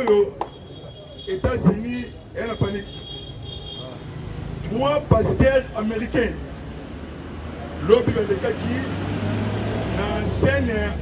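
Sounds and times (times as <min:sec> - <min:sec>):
man speaking into a microphone: 0:00.0 - 0:03.2, 0:03.8 - 0:06.5, 0:07.7 - 0:09.0, 0:09.8 - 0:11.0.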